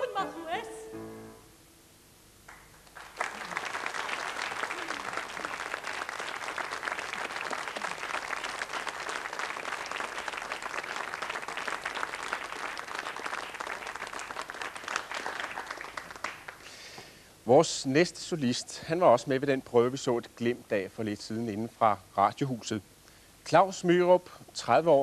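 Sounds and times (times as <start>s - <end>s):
audience applauding: 2.5s - 16.8s.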